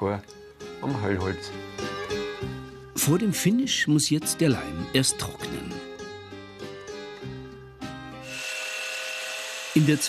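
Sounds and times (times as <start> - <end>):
background music: 0.0 - 10.0
band saw cutting wood: 8.2 - 10.0.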